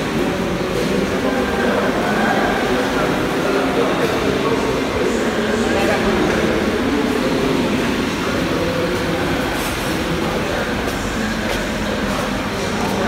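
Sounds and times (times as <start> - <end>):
canteen hall hum and hiss: 0.0 - 13.0
faint distant voices: 0.0 - 13.0.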